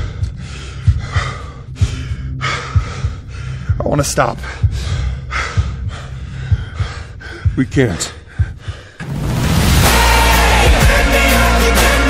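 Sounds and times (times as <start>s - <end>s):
person breathing hard: 0.0s - 9.0s.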